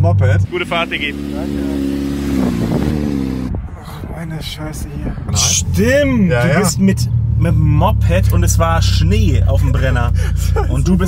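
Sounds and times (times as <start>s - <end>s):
motorcycle engine running: 0.0s - 3.5s.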